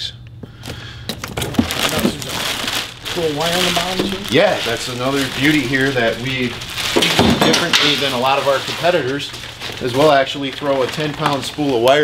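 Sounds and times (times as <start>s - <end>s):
plastic bag crinkling: 1.1s - 12.0s.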